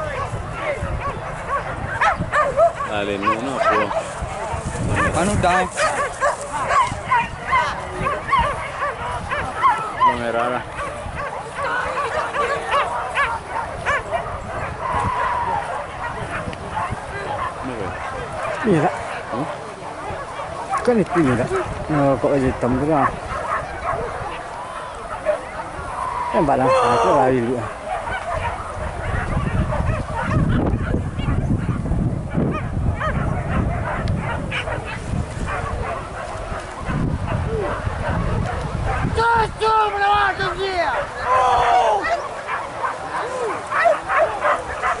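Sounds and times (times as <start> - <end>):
dogs yelping: 0.0 - 4.2, 4.8 - 21.8, 22.4 - 39.2, 40.5 - 45.0
people shouting: 11.4 - 16.4, 24.2 - 27.9, 39.0 - 45.0.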